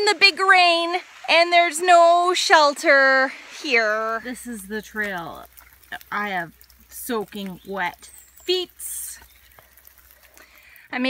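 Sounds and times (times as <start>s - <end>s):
splashy hiss: 0.0s - 11.0s
water on muddy trail in rain: 0.0s - 11.0s.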